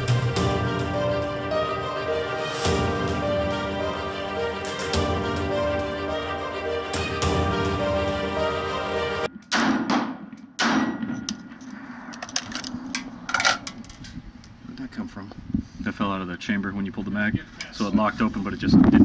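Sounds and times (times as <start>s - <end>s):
background music: 0.0s - 9.9s.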